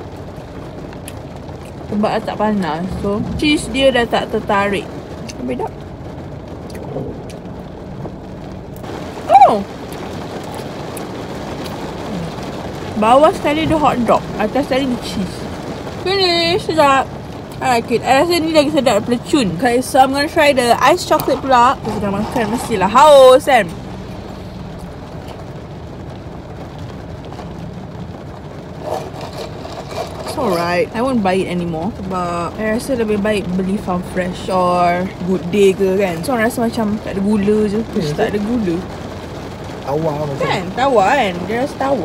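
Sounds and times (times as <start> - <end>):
steady car cabin hiss: 0.0 - 42.0.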